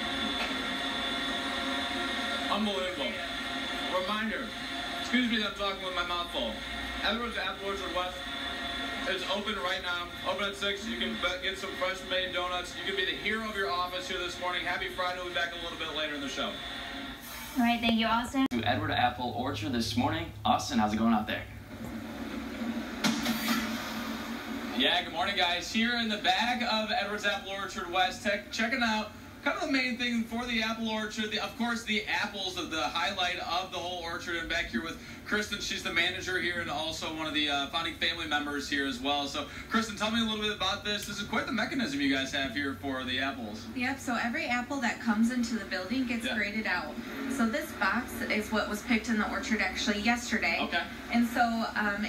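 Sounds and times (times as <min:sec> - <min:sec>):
machinery humming and whirring: 0:00.0 - 0:20.5, 0:44.9 - 0:52.0
broadcast whoosh: 0:00.0 - 0:52.0.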